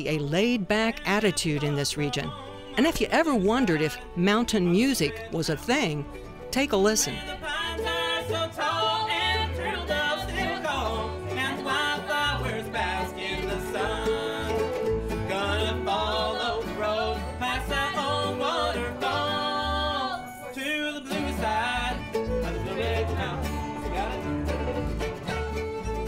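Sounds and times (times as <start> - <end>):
voices singing: 0.0 - 25.1
bluegrass band playing: 0.0 - 26.0.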